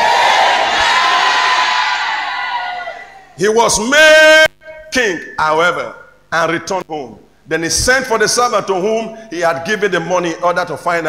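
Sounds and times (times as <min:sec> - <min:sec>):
congregation cheering and shouting: 0:00.0 - 0:04.5.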